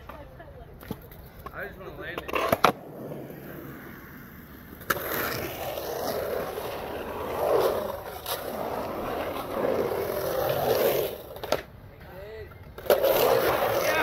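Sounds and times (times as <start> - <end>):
skateboard clacks: 0.0 - 11.7
skateboard wheels rolling: 0.0 - 14.0.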